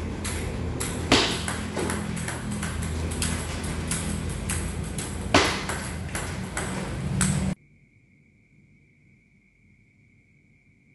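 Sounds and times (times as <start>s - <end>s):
table tennis ball hitting paddle and table: 0.0s - 7.6s.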